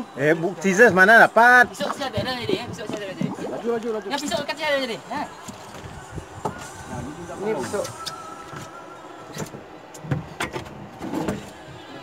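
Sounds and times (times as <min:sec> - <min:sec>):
men talking: 0:00.0 - 0:08.3.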